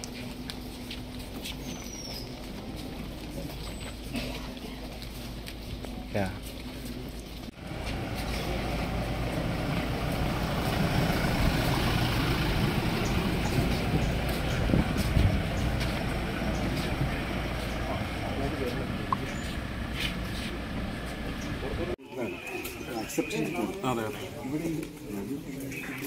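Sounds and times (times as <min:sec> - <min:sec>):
car driving slowly past: 0:00.0 - 0:22.0
people talking: 0:06.0 - 0:06.5, 0:13.4 - 0:19.6, 0:21.3 - 0:26.0.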